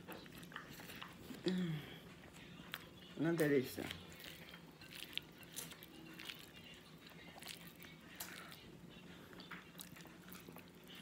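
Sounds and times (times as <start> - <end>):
person chewing food: 0.0 - 11.0.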